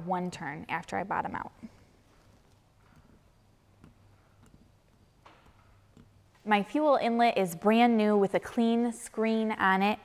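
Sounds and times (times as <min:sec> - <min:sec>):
faint room hum: 0:00.0 - 0:10.0
soft screw clicks: 0:02.2 - 0:06.2.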